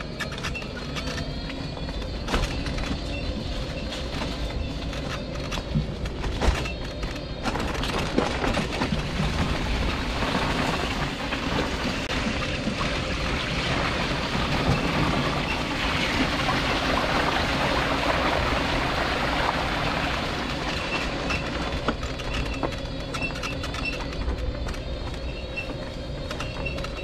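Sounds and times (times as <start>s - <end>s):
scooter tyres through slush: 7.8s - 22.7s.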